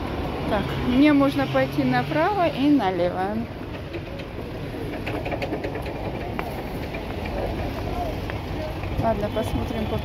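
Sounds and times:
traffic rumble: 0.0 - 10.0
crowd noise: 0.6 - 10.0
faint clicks and rattles: 3.6 - 9.0.

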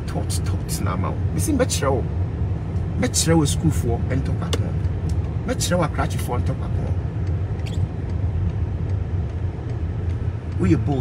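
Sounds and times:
car cabin rumble: 0.0 - 11.0
man's voice: 10.6 - 11.0.

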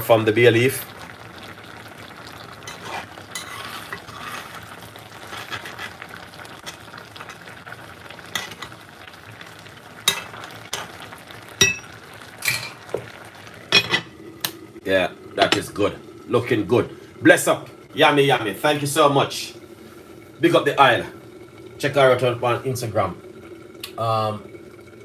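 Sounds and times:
sauce sizzling: 0.0 - 25.0
spoon stirring in metal pot: 2.7 - 4.6
spoon clinking on pot: 11.6 - 11.9.

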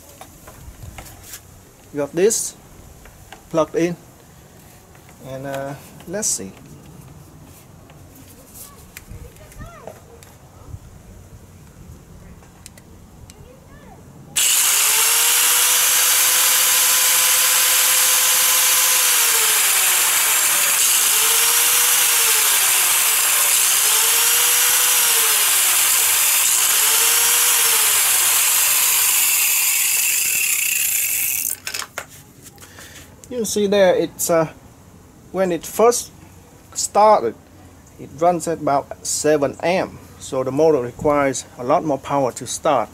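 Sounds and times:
angle grinder motor whine: 14.4 - 31.6.

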